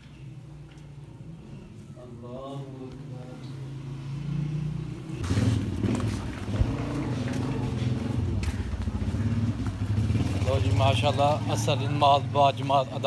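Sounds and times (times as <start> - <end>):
voices: 0.2 - 4.2, 6.4 - 13.0
vehicle engine running: 3.6 - 13.0.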